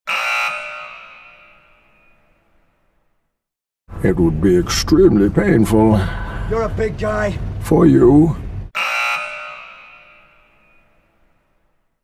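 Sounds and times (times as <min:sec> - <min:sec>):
ringing tone: 0:00.1 - 0:02.7, 0:08.8 - 0:11.4.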